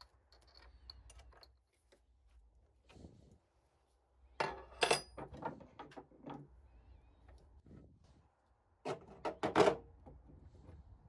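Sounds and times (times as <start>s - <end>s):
metal tools clinking: 4.4s - 5.3s.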